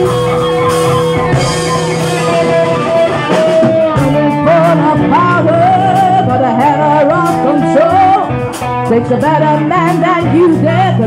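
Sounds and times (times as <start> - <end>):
drums: 0.0 - 11.0
electric guitars: 0.0 - 11.0.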